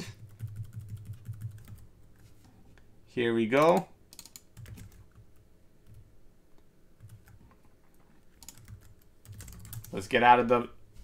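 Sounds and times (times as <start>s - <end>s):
computer keyboard typing: 0.1s - 1.9s, 3.6s - 6.0s, 7.0s - 10.0s.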